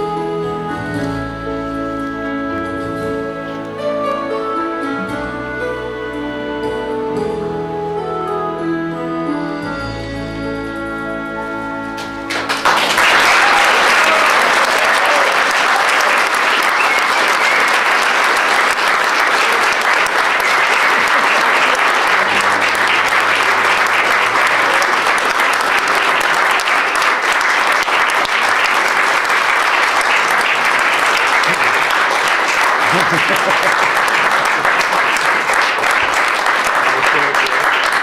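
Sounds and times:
music: 0.0s - 13.4s, 21.8s - 38.0s
audience applauding: 12.0s - 38.0s.

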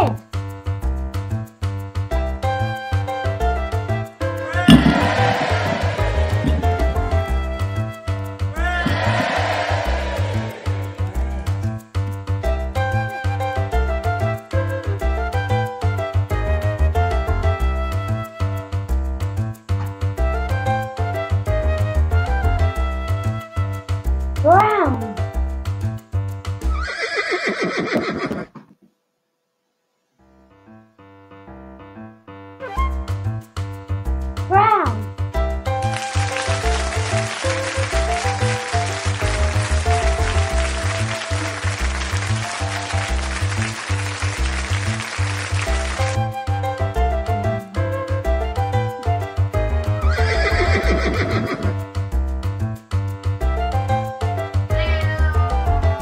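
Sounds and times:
background music with steady beat: 0.0s - 26.8s, 32.6s - 56.0s
horse whinny: 26.7s - 28.6s, 50.1s - 51.8s.

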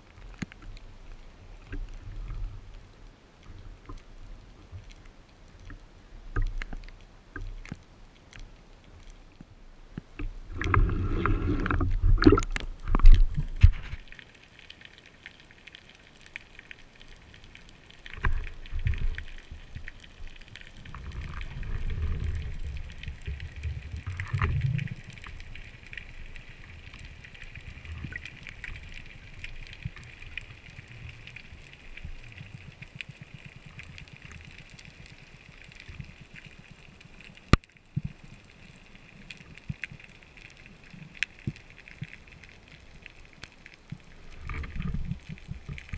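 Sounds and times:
splashing and rushing water: 10.2s - 15.2s.

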